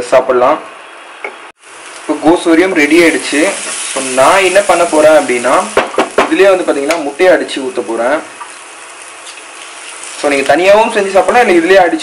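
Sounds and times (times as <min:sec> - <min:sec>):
cabbage sizzling in a pan: 0:01.6 - 0:12.0
person talking: 0:02.1 - 0:08.3, 0:10.2 - 0:12.0.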